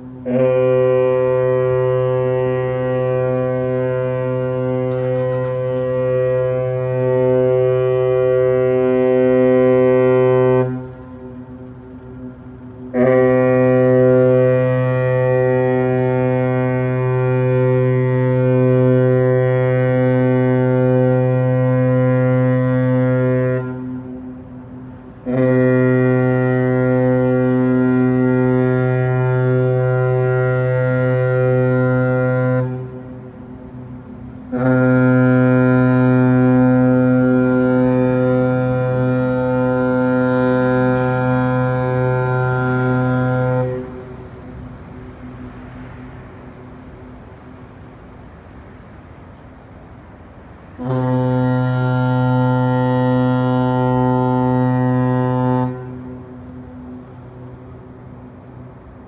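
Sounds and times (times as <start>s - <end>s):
ship horn long low blasts: 0.0s - 59.0s.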